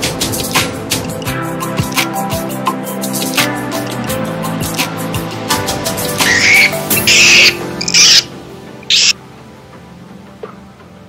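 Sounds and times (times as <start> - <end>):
background music: 0.0 - 11.0
harsh bird calls: 6.2 - 9.2.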